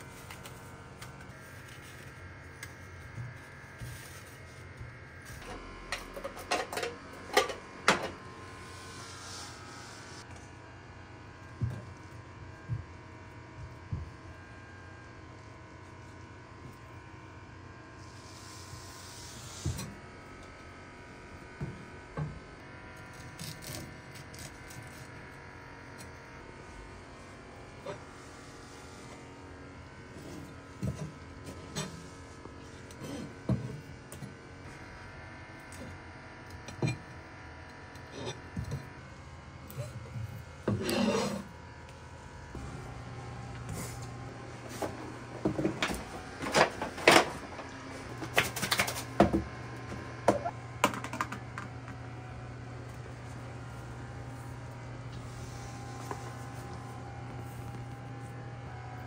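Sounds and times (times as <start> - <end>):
steady hum: 0.0 - 59.0.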